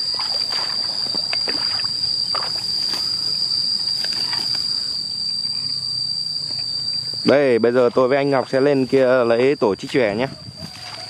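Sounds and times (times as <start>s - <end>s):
insect high-pitched drone: 0.0s - 11.0s.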